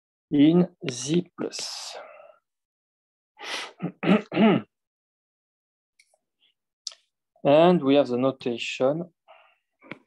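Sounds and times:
man clearing his throat: 3.7s - 4.8s.

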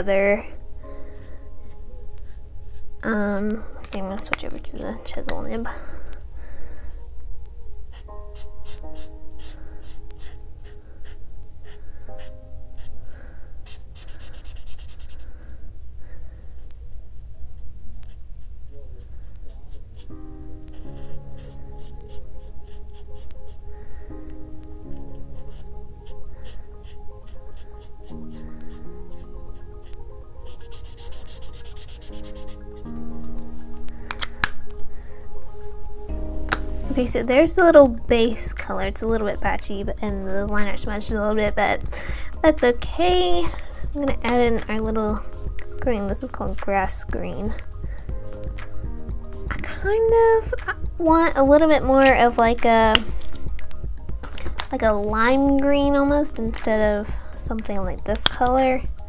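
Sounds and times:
slow background music: 0.0s - 59.0s
marker rubbing on paper: 13.6s - 15.2s, 30.5s - 32.6s.

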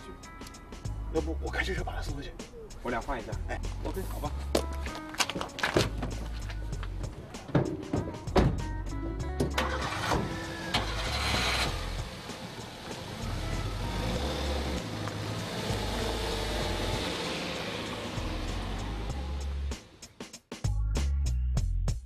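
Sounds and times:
background music: 0.0s - 22.0s
truck engine starting and running: 3.6s - 20.2s
car doors shutting: 7.2s - 13.1s.

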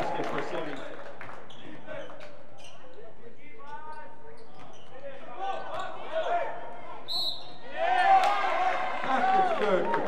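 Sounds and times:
voices of players and crowd: 0.0s - 10.0s.

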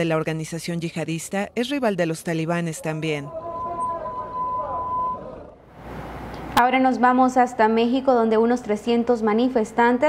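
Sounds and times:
steady high-pitched tone: 3.2s - 5.6s.

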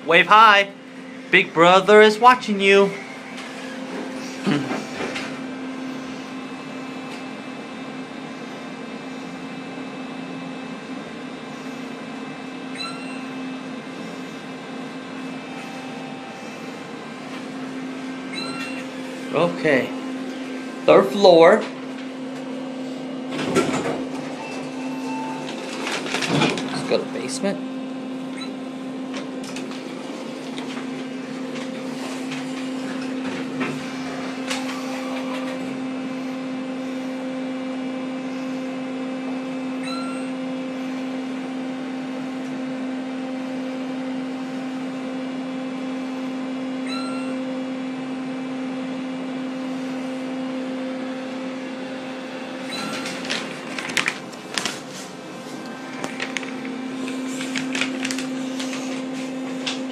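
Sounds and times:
elevator humming: 0.0s - 59.9s
electronic chime tones: 12.8s - 13.4s, 18.3s - 18.8s, 39.8s - 40.3s, 46.9s - 47.4s.

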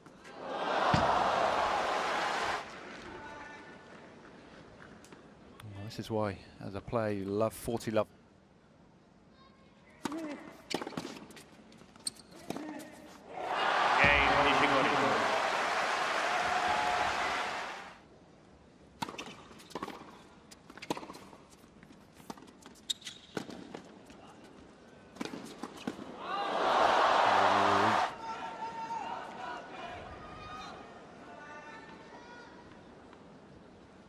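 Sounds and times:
crowd applauding and cheering: 0.5s - 2.8s, 13.5s - 18.0s, 26.6s - 28.1s.

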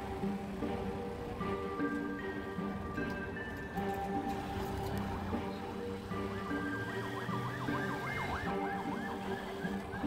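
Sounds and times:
background music: 0.0s - 10.0s
electronic siren sweeping: 6.2s - 10.0s.

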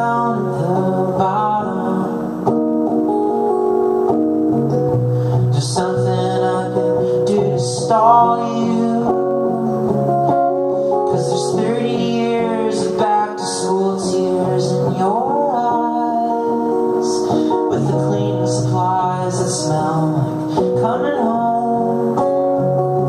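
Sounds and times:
man singing: 0.0s - 3.1s, 5.4s - 23.0s
strummed acoustic guitar: 0.0s - 23.0s.

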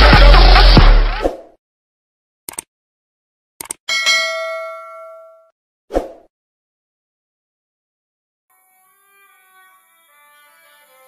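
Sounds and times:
notification bell ding: 3.9s - 5.5s.

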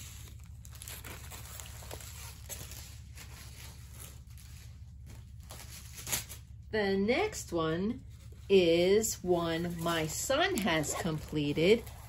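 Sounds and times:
canvases and plastic film rustling: 0.0s - 6.6s, 8.0s - 12.0s
low steady hum: 0.0s - 12.0s.

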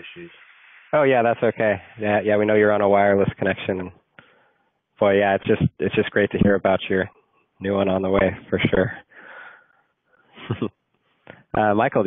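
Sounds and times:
man exhaling: 9.1s - 9.7s
man laughing: 10.4s - 10.8s.

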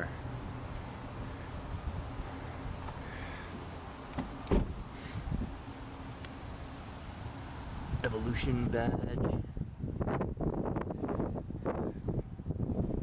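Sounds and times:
steady low rumble: 0.0s - 13.0s
car door shutting: 4.1s - 5.0s.

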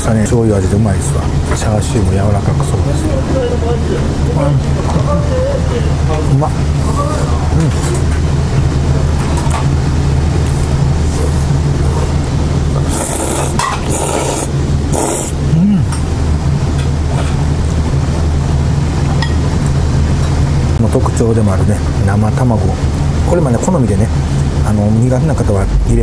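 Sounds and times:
steady low hum: 0.0s - 26.0s
noodles being slurped: 12.8s - 15.4s.

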